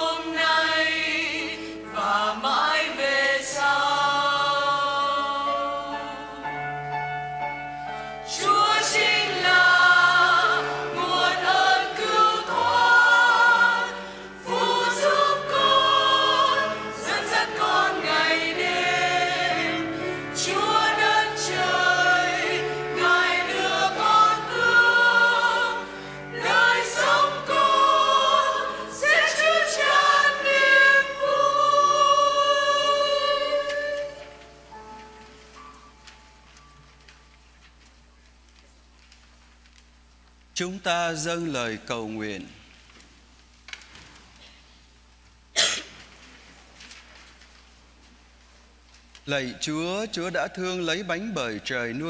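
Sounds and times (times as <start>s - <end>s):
church choir singing a hymn: 0.0s - 6.8s, 7.9s - 34.4s.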